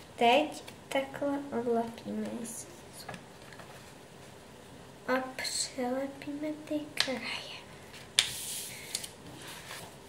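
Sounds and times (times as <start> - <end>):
paper rustling: 7.9 - 10.0.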